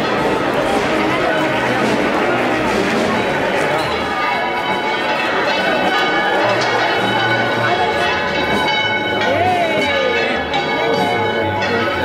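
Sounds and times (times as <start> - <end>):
church bells pealing: 0.0 - 12.0
large crowd noise: 0.0 - 12.0.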